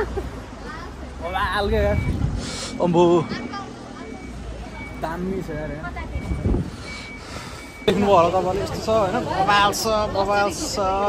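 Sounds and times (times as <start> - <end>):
reversing alarm beeping: 1.6 - 9.0
wind rumble on microphone: 1.7 - 2.4, 6.1 - 6.8.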